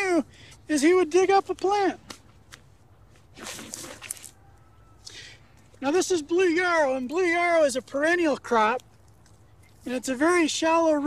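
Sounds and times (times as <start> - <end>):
spade scraping into dry soil: 3.2 - 4.4.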